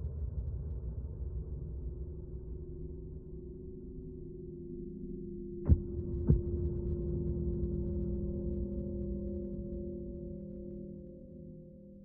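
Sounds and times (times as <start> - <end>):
deep thumps: 5.7 - 6.5.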